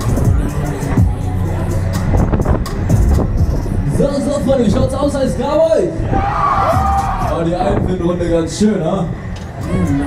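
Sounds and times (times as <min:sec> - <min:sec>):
loud fairground ride music: 0:00.0 - 0:10.0
wind buffeting microphone: 0:01.1 - 0:10.0.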